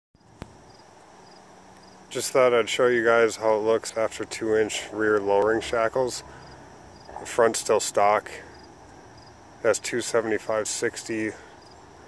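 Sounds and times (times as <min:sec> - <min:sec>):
high insect chirp: 0:00.2 - 0:12.0
low steady hiss: 0:00.2 - 0:12.0.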